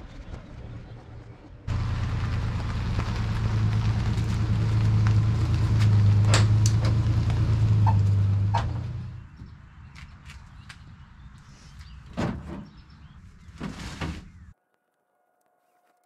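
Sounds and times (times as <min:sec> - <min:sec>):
pickup truck engine running: 0:01.7 - 0:09.1.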